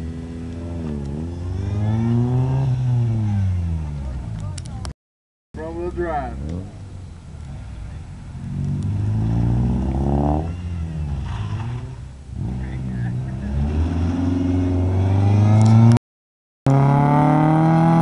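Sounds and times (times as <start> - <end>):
car engine revving: 0.0 - 4.6, 5.9 - 16.0, 16.7 - 18.0.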